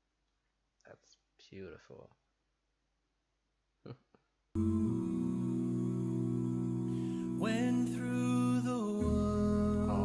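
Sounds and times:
vocal group humming a chord: 4.6s - 10.0s.

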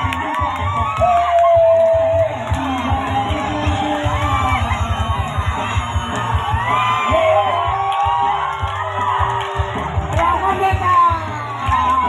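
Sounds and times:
crowd shouting and cheering: 0.0s - 12.0s
loud music with pulsing beat: 0.0s - 12.0s.

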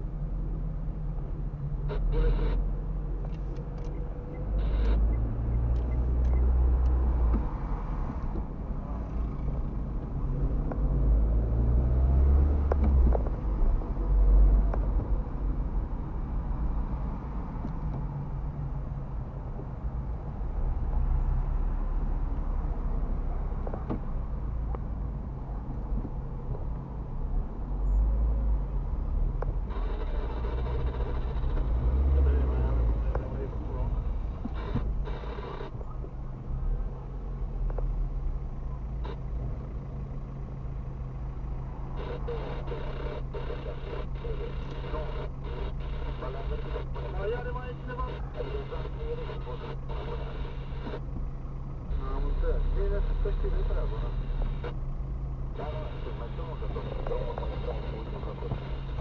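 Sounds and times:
car engine rumble: 0.0s - 59.0s
road rumble: 0.0s - 59.0s.

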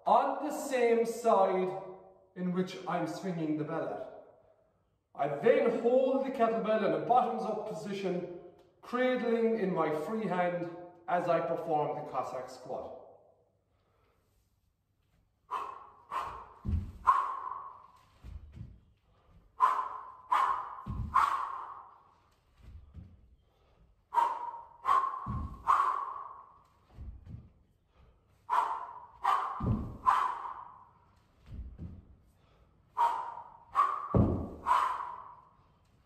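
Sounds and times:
man breathing sharply: 13.6s - 14.5s, 15.4s - 31.4s, 32.0s - 35.9s
kettlebell low thud: 16.2s - 17.2s, 20.8s - 21.3s, 25.2s - 25.8s, 29.4s - 30.2s, 34.1s - 34.7s.

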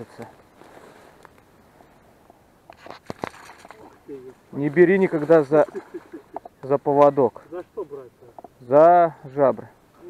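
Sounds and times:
rustling through tall grass: 0.0s - 7.1s.

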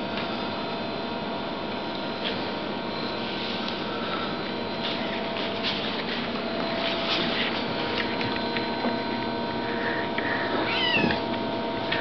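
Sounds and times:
kitten chirping: 10.6s - 11.2s.

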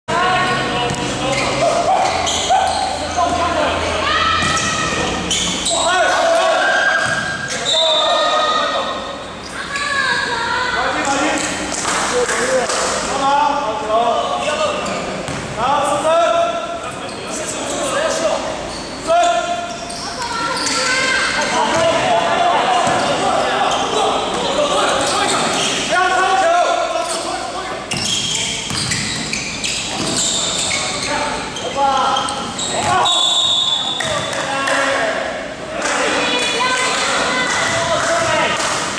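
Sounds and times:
players calling out: 0.1s - 13.6s, 14.2s - 38.9s
voices echoing in hall: 0.1s - 38.9s
shoes squeaking on floor: 0.4s - 3.4s, 4.3s - 8.5s, 17.0s - 25.9s, 27.0s - 34.5s
basketball dribbling: 27.9s - 30.3s.

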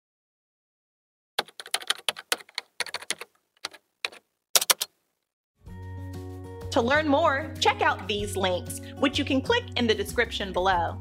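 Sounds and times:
computer keyboard key clicks: 1.4s - 4.9s.

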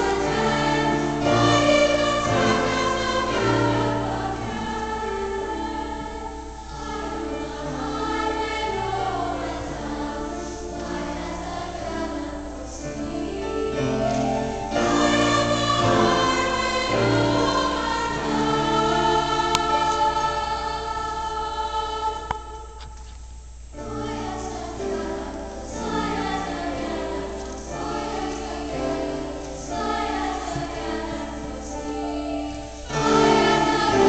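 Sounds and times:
youth choir singing: 0.0s - 22.9s, 23.8s - 34.0s.

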